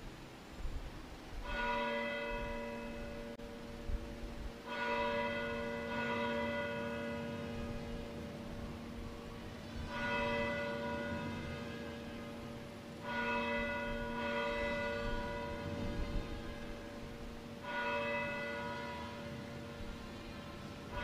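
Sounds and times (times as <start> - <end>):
church bell tolling: 1.4 - 21.0.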